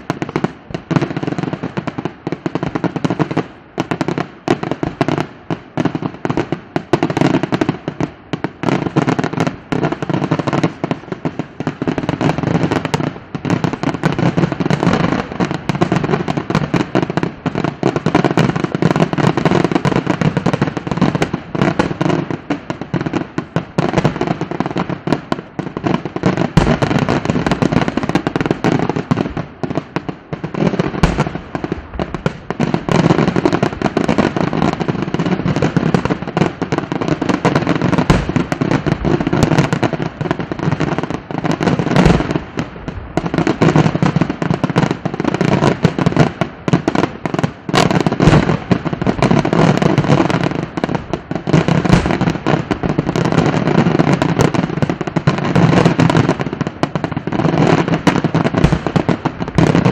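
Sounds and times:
fireworks bangs and crackling: 0.0 - 59.9.

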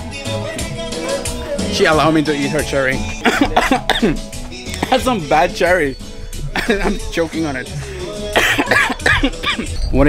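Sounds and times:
background music: 0.0 - 10.0
man coughing: 3.2 - 5.0, 6.4 - 7.1, 8.3 - 9.8.

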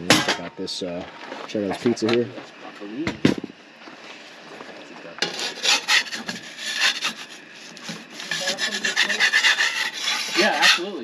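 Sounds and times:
pizza peel scraping on stone: 5.2 - 11.0.

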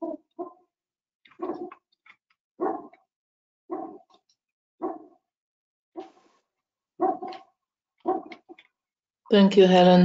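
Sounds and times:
dog barking: 1.4 - 1.8, 2.6 - 3.0, 3.7 - 4.1, 4.8 - 5.2, 7.0 - 8.4.

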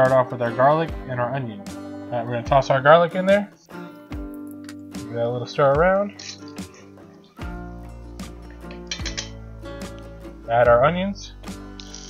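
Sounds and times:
guitar music: 0.0 - 12.0.

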